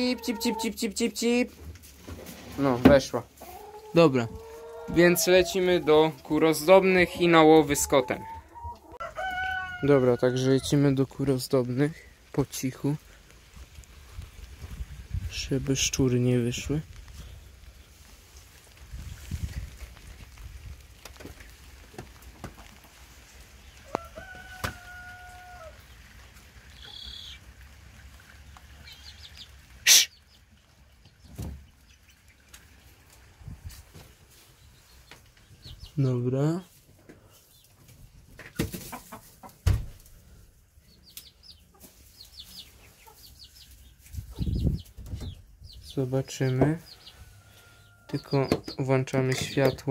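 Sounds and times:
hens clucking: 0.0s - 1.5s, 2.1s - 11.4s, 37.1s - 39.7s.

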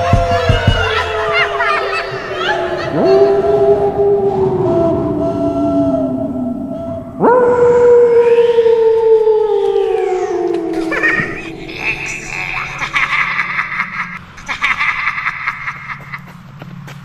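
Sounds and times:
wolf-like howls: 0.0s - 14.2s.

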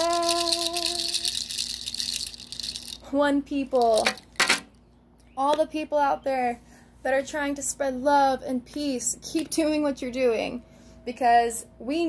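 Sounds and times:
pod rattle shaken: 0.0s - 4.6s.

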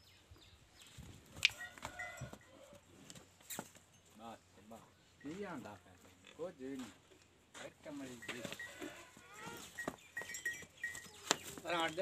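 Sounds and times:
farm animal crying: 8.5s - 10.0s.

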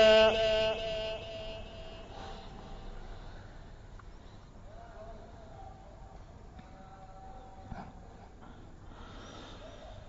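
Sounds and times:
echoing recited note: 0.0s - 3.0s
low background hum: 0.0s - 10.0s.

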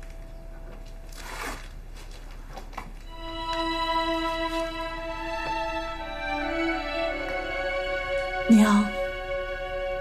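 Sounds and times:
string-like drama score: 3.0s - 10.0s.

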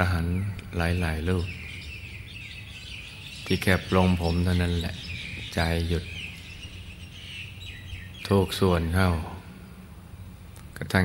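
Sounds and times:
birds chirping: 0.0s - 11.0s
steady low hum: 0.0s - 11.0s.

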